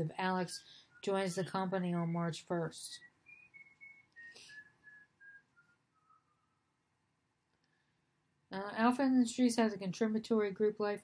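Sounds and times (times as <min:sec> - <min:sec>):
person whistling faintly: 0:00.4 - 0:06.9.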